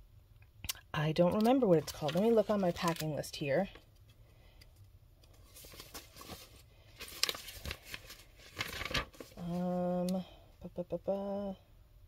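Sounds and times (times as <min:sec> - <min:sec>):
paper rustling and crinkling: 0:01.2 - 0:03.4, 0:05.3 - 0:09.8.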